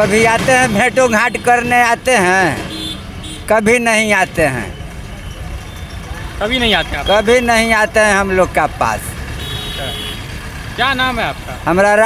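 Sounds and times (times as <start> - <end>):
passing vehicles traffic: 0.0 - 12.0.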